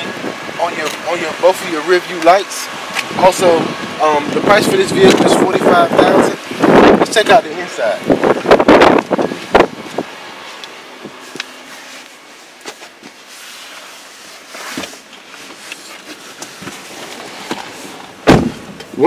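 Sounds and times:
person shuffling in seat: 9.3 - 18.2
car door opening clicks: 17.5 - 19.0.

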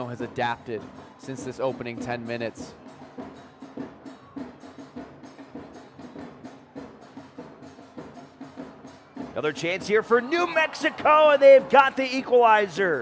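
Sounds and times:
drums beating steady rhythm: 0.0 - 13.0.

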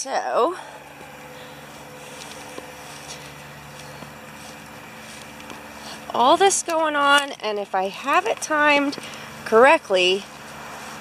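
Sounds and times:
faint droning tone: 0.0 - 11.0
steady low hum: 0.0 - 11.0.

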